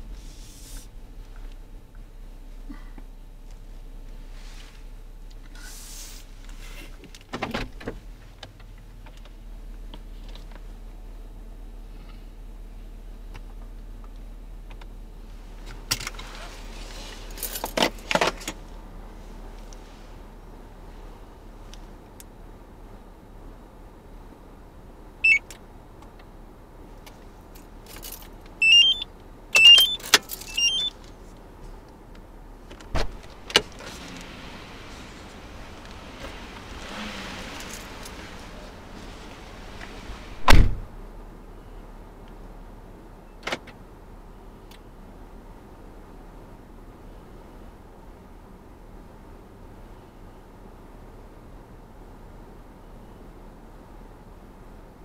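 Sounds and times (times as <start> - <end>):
rustling hisses: 0.1 - 1.0, 5.5 - 6.9.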